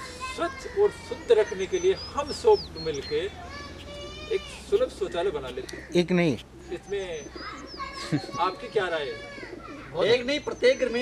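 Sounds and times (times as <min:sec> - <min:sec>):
birds calling: 0:00.0 - 0:11.0
men talking over one another: 0:00.0 - 0:11.0.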